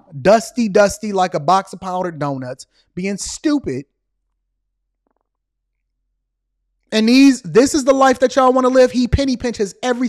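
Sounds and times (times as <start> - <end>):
person speaking: 0.0 - 3.8, 6.9 - 10.0.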